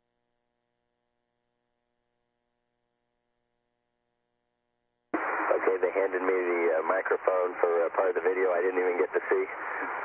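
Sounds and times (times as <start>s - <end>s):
faint steady hum: 0.0s - 10.0s
man speaking over radio: 5.2s - 10.0s.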